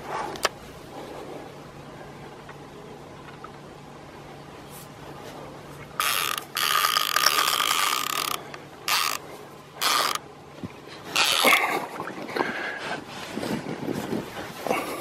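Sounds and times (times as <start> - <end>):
fishing reel whirring: 6.0 - 10.2, 11.1 - 11.7.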